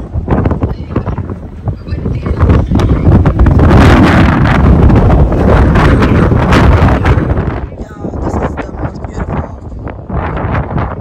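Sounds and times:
wind blowing across microphone: 0:00.0 - 0:11.0.

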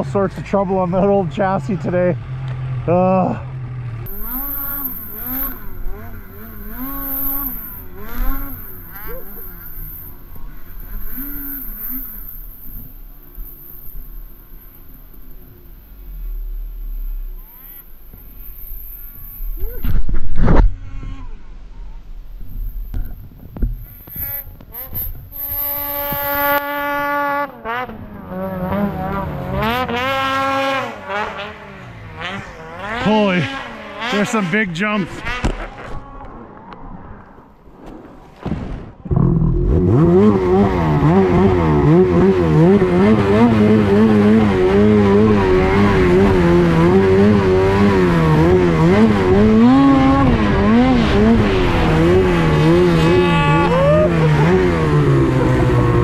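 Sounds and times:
snowmobile engines revving: 0:00.0 - 0:37.6, 0:39.1 - 0:56.0.

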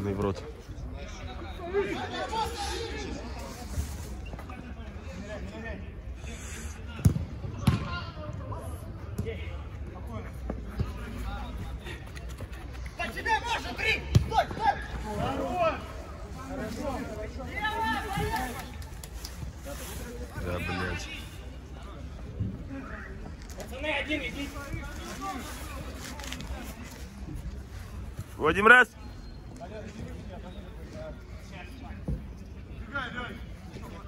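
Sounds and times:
football kicks on turf: 0:07.0 - 0:07.9.

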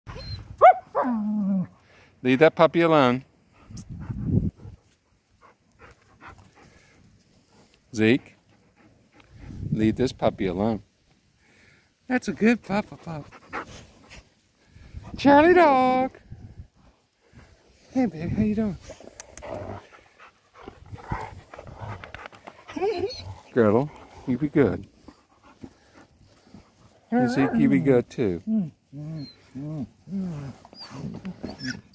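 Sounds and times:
dogs panting: 0:03.4 - 0:09.8, 0:12.7 - 0:15.6, 0:16.8 - 0:28.0
dog growling: 0:19.0 - 0:20.0, 0:20.6 - 0:24.4.

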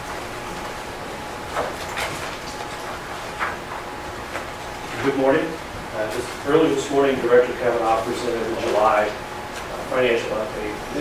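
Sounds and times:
soft rustling of people moving: 0:06.0 - 0:10.2.

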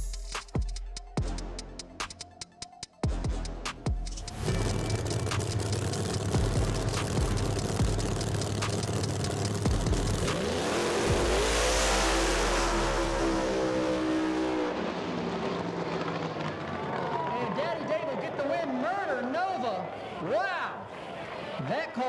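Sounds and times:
drag race car engines crackling: 0:04.2 - 0:19.3.

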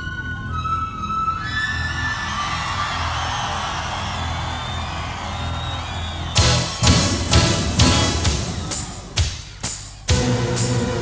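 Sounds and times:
crowd cheering and whooping: 0:01.3 - 0:09.2.

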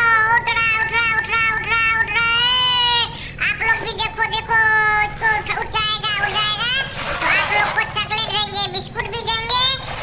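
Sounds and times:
child singing: 0:00.0 - 0:09.9.

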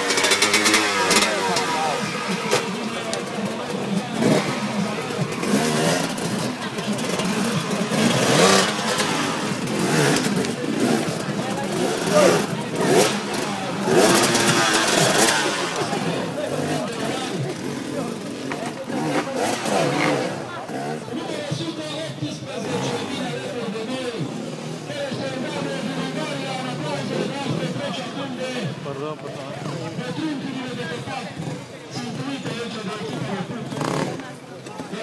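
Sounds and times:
motorcycle engine revving: 0:00.0 - 0:35.0
people's voices: 0:00.0 - 0:35.0.

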